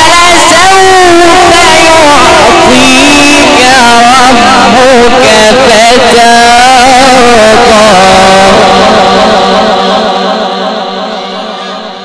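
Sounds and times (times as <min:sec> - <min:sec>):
man reciting melismatic chant: 0:00.0 - 0:12.0.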